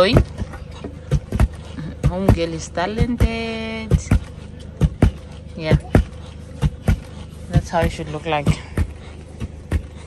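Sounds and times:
pestles pounding in wooden mortar: 0:00.0 - 0:10.0.

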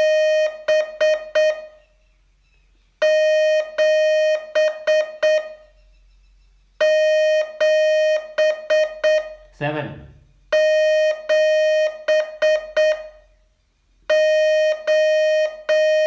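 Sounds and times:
morse code tone: 0:00.0 - 0:02.0, 0:03.0 - 0:05.8, 0:06.8 - 0:09.5, 0:10.5 - 0:13.4, 0:14.1 - 0:16.0.

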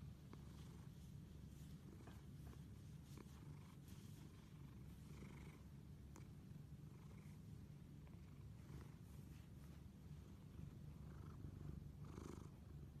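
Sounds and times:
cat purring: 0:00.0 - 0:13.0.

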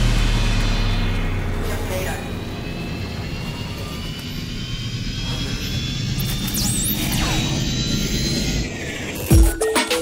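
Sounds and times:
sci-fi hover car engine rumble: 0:00.0 - 0:09.3
high whine rising in pitch: 0:00.0 - 0:10.0.

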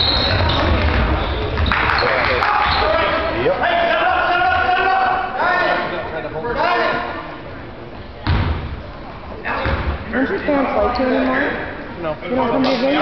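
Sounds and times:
voices shouting in a gym: 0:02.0 - 0:07.4.

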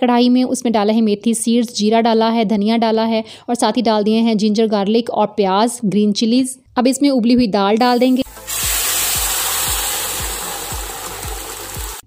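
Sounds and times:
dal sizzling in hot ghee: 0:07.9 - 0:12.0.

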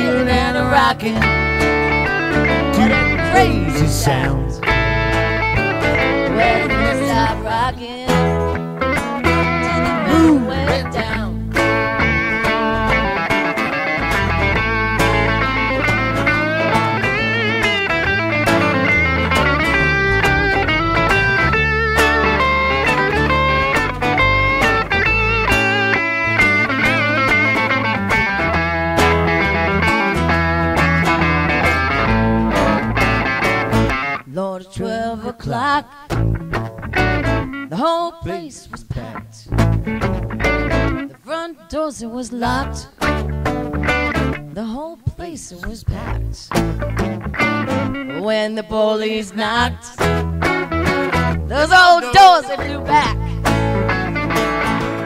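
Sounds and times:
bass guitar: 0:00.0 - 0:34.3, 0:34.9 - 0:37.7, 0:38.8 - 0:41.2, 0:42.5 - 0:44.7, 0:45.6 - 0:48.4, 0:49.3 - 0:55.0
electric lead guitar riffs: 0:00.0 - 0:34.3, 0:35.6 - 0:41.3, 0:42.4 - 0:44.6, 0:46.0 - 0:55.0
acoustic rhythm guitar: 0:00.0 - 0:55.0.

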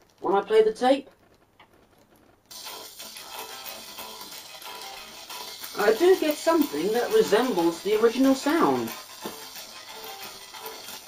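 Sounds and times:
singing arc playing hissy music: 0:02.5 - 0:11.0.

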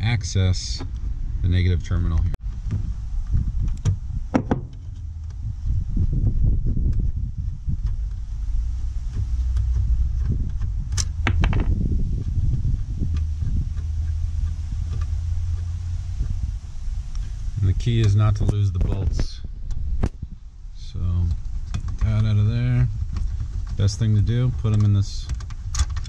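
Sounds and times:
steady low rumble: 0:00.0 - 0:26.0.

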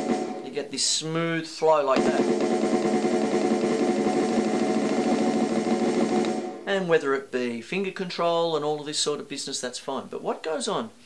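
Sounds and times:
drumstick roll on practice pad: 0:02.0 - 0:06.6.

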